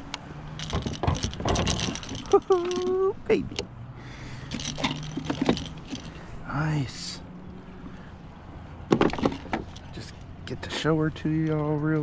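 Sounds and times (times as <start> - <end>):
landing net clicks and rattling: 0.5 - 3.0, 4.5 - 6.2, 8.9 - 10.0.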